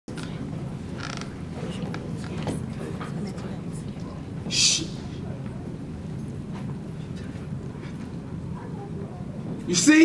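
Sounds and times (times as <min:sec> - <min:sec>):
steady low hum: 0:00.1 - 0:10.0
short creak: 0:01.0 - 0:01.4.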